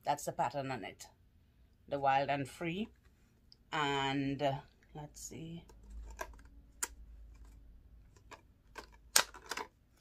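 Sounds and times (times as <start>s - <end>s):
plastic packaging clicks and taps: 5.7s - 9.7s.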